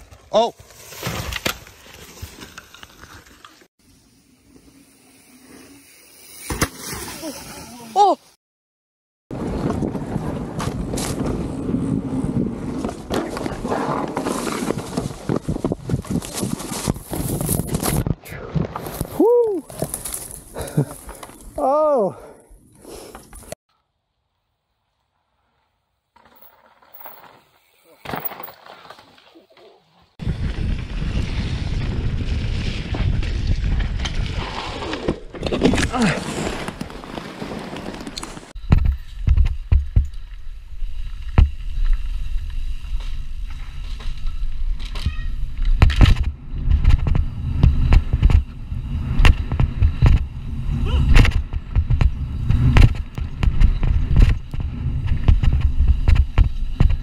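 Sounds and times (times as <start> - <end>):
wind and tyres rushing: 9.3 - 23.6, 30.1 - 57.0.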